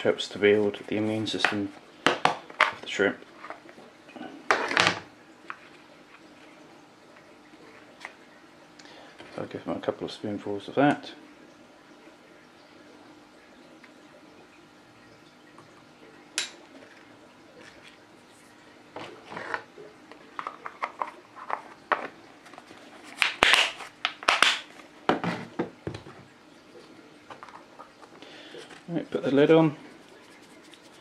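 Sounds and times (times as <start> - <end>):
plastic containers and lids handled: 19.0 - 26.3, 27.2 - 29.0.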